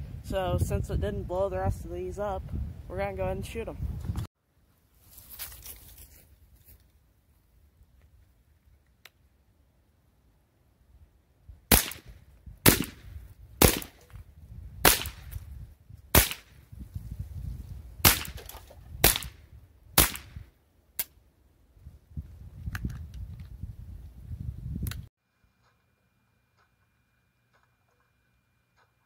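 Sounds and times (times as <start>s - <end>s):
rifle shots cracking: 11.7s - 14.0s, 14.8s - 15.4s, 16.1s - 16.5s, 18.0s - 19.4s, 20.0s - 20.4s.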